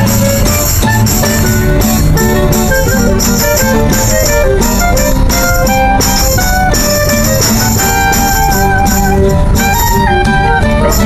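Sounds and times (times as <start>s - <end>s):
klezmer band music: 0.0s - 11.0s.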